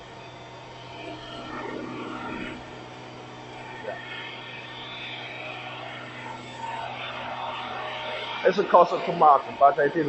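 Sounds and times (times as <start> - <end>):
low hum: 0.0 - 10.0
machinery drone: 0.0 - 10.0.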